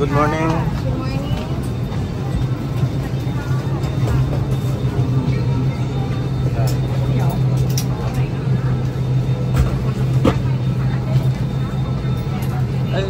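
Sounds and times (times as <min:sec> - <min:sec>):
airliner cabin air system hum: 0:00.0 - 0:13.0
quiet passenger chatter: 0:00.0 - 0:13.0.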